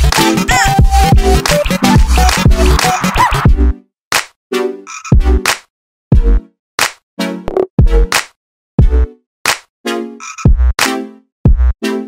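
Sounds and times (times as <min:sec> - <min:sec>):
electronic dance music: 0:00.0 - 0:03.6.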